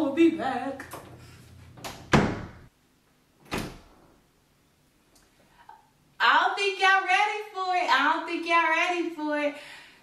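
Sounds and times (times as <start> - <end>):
closet door shutting with thump: 1.8 - 2.7, 3.4 - 4.0.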